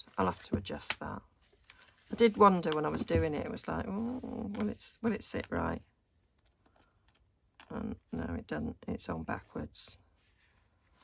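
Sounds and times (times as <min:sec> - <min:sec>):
woman speaking: 0:00.0 - 0:01.3, 0:02.1 - 0:05.9, 0:07.6 - 0:10.0.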